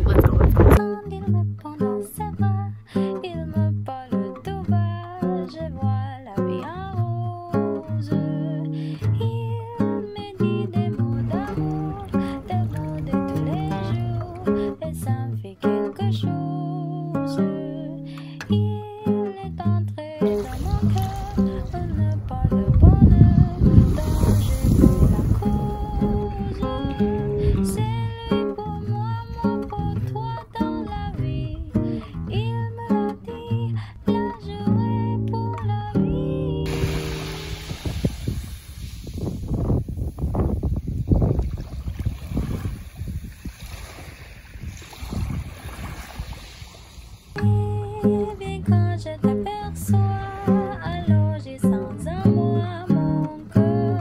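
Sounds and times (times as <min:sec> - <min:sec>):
wind on the microphone: 0:00.0 - 0:00.8, 0:20.4 - 0:30.1, 0:36.7 - 0:47.7
small waves washing over pebbles: 0:20.4 - 0:21.8, 0:23.8 - 0:25.8, 0:36.7 - 0:40.0, 0:41.4 - 0:47.4.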